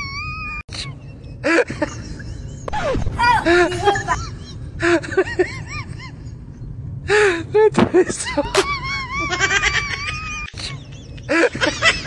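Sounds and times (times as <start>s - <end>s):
shrill laughter: 0.0s - 6.4s, 8.3s - 12.0s.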